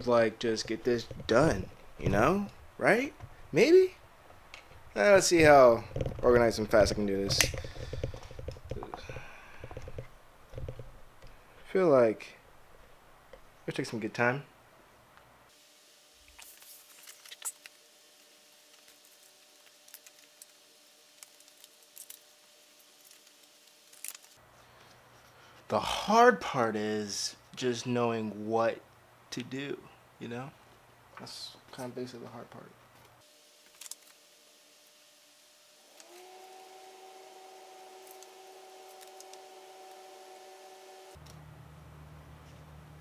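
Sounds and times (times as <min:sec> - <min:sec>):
two-tone electrical hum: 0:00.0 - 0:43.0
photo prints clicking and rustling: 0:16.4 - 0:17.8.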